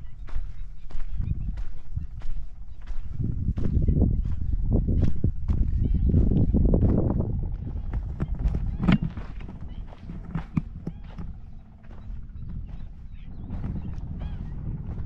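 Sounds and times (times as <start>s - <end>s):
footsteps crunching on sandy dirt: 0.0s - 15.0s
wind rumble on microphone: 0.0s - 15.0s.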